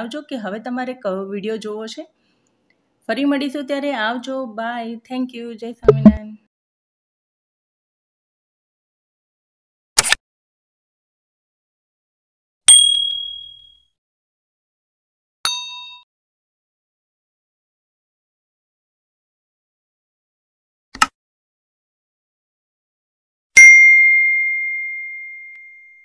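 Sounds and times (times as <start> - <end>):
bright high ding: 12.7 - 13.8, 15.5 - 16.0, 23.6 - 26.0.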